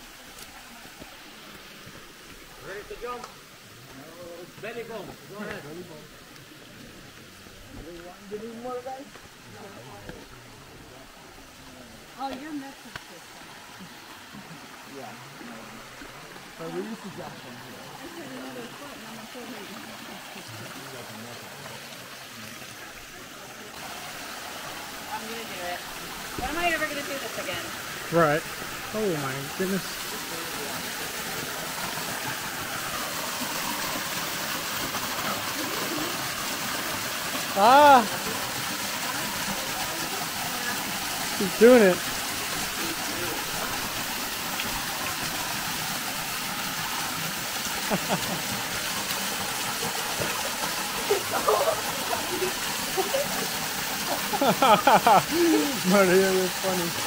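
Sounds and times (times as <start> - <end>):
small waterfall rushing: 0.0 - 57.0.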